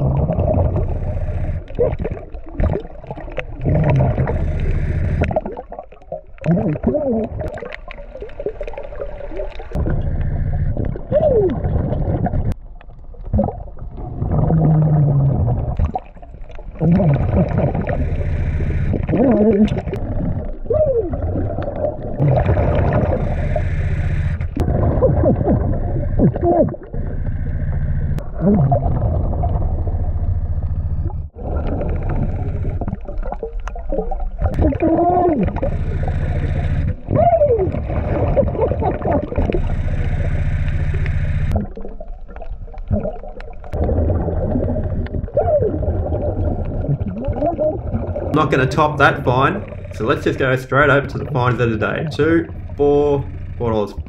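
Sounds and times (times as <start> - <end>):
regulator breathing: 0.0 - 1.8, 3.6 - 5.3, 9.6 - 11.3, 16.8 - 20.3, 22.2 - 24.7, 25.6 - 28.2, 34.4 - 41.6, 48.4 - 54.0
steady low hum: 0.0 - 5.6, 8.4 - 12.6, 14.3 - 54.0
exhaust bubbling: 0.0 - 12.6, 13.2 - 54.0
diver's muffled garbled voice: 3.6 - 4.6, 6.4 - 7.6, 16.8 - 20.0, 20.6 - 21.4, 22.2 - 23.6, 26.0 - 27.0, 34.4 - 39.8, 47.3 - 54.0.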